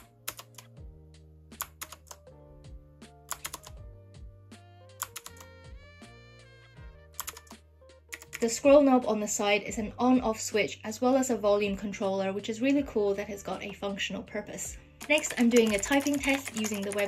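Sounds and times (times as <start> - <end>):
mechanical keyboard clicks: 0.0 - 0.7, 1.6 - 2.2, 3.3 - 3.8, 5.0 - 5.5, 7.2 - 7.5, 8.1 - 8.5, 15.0 - 17.0
soft background music: 0.0 - 17.0.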